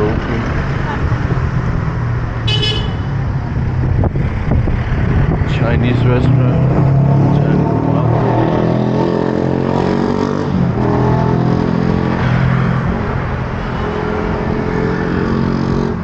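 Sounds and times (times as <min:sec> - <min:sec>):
vehicle engine humming: 0:00.0 - 0:08.4
traffic noise: 0:00.0 - 0:16.0.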